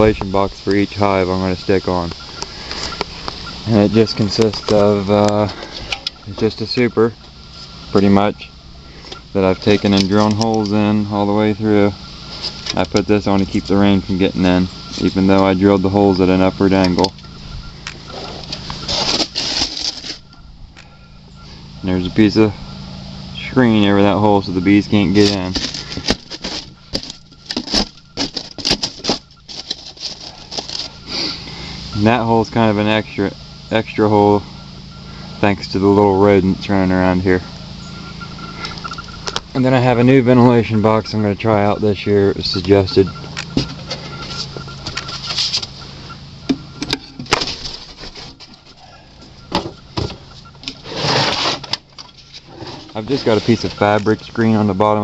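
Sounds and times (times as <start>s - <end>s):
rustling scrape: 18.1s - 20.3s, 25.2s - 31.4s, 43.8s - 45.7s, 47.3s - 48.8s, 50.8s - 54.0s.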